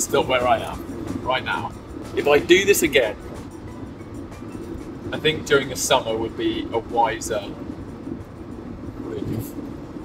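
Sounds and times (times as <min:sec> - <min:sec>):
road and tyre rumble: 0:00.0 - 0:10.0.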